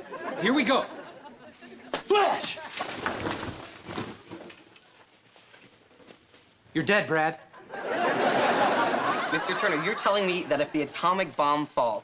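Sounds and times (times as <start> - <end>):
shuffling and rustling: 1.4 - 6.7.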